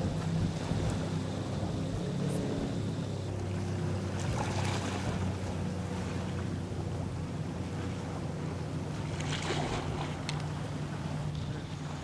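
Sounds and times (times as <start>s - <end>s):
motorboat engine droning: 0.0s - 12.0s
water: 0.0s - 12.0s.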